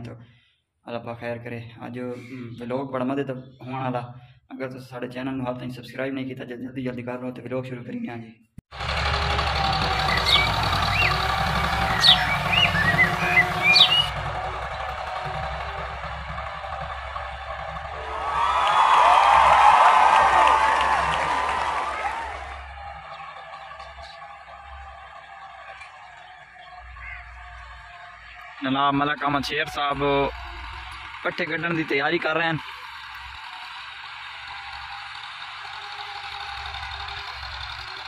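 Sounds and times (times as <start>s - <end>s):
tractor diesel engine running: 8.7s - 38.0s
high chattering: 9.0s - 18.4s
birds chirping: 9.6s - 14.4s, 22.6s - 31.1s.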